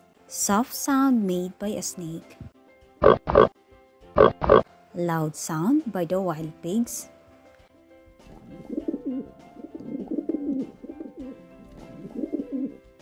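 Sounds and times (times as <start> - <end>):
soft background music: 0.0 - 13.0
pigeons cooing: 8.3 - 12.9.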